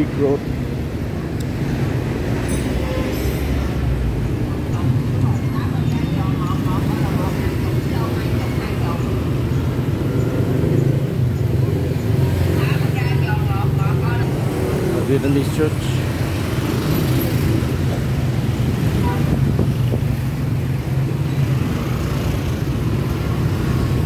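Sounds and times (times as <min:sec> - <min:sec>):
traffic engines passing: 0:00.0 - 0:24.0.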